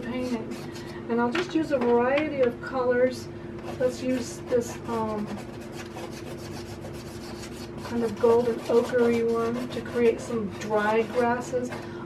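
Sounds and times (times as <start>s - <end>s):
pastel stick scratching on paper: 3.6s - 11.8s.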